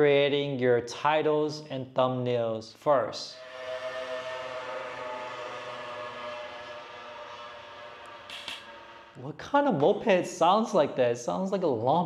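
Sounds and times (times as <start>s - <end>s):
moped engine passing: 3.3s - 9.2s.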